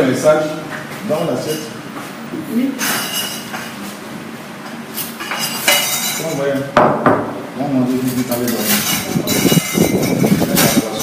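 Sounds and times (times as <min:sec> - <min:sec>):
dishes and utensils clinking: 0:01.1 - 0:01.8, 0:02.8 - 0:03.9, 0:04.9 - 0:06.7, 0:08.0 - 0:11.0.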